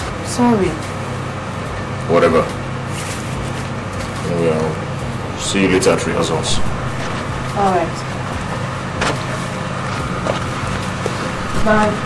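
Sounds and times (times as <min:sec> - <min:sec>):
motor humming: 0:00.0 - 0:12.0.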